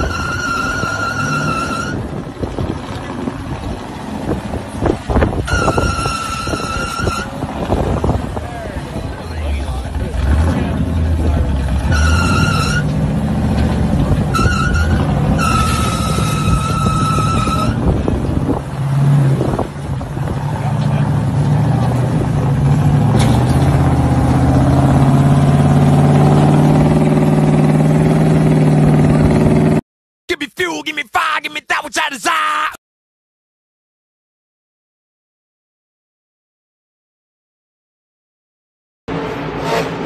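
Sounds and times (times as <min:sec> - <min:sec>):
high whistling squeal: 0:00.0 - 0:02.1, 0:14.4 - 0:17.8
truck engine revving under load: 0:00.0 - 0:29.8.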